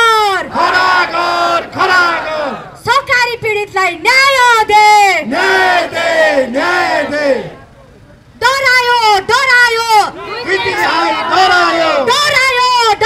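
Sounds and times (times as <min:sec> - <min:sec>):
woman shouting through loudspeakers: 0:00.0 - 0:00.6, 0:01.8 - 0:05.6, 0:08.4 - 0:13.0.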